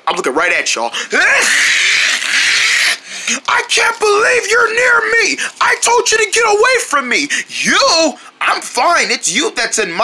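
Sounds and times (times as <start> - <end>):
person sliding vocal sound: 1.1 - 5.8.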